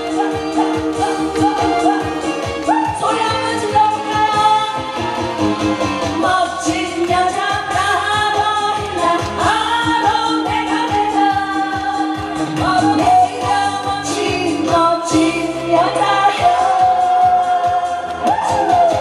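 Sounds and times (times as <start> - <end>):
woman singing into a microphone: 0.0 - 5.3, 6.1 - 19.0
band accompaniment with steady beat: 0.0 - 19.0.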